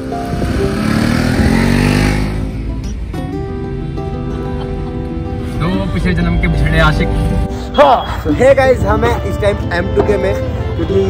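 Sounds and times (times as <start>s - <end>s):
motorcycle revving passing by: 0.0s - 2.9s
background music: 0.0s - 11.0s.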